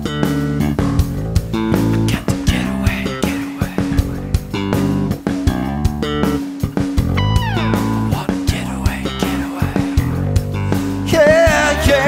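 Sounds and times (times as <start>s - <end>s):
electric guitars playing rock: 0.0s - 12.0s
high note sliding down: 7.2s - 8.1s.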